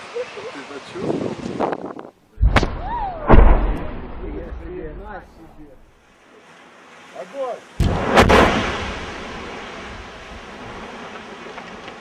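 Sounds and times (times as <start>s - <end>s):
low rumble: 2.4s - 5.9s
underwater explosion: 2.4s - 5.9s, 7.8s - 11.2s.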